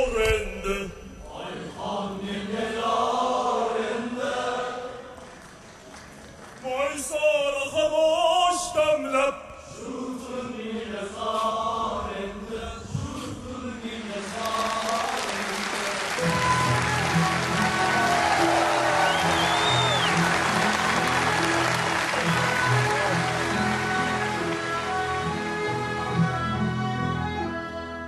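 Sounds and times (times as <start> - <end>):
man singing opera with orchestra: 0.0 - 4.9, 6.6 - 21.0
audience applause: 5.2 - 7.0, 14.2 - 26.1
whistle from crowd: 16.2 - 20.4.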